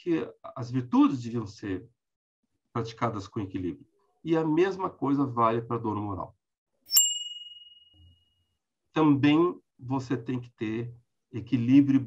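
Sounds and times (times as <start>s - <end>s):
bright bell ding: 6.9s - 8.0s.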